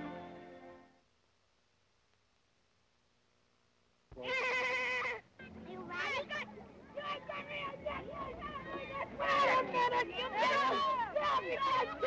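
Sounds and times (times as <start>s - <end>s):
child shouting: 4.2s - 12.0s.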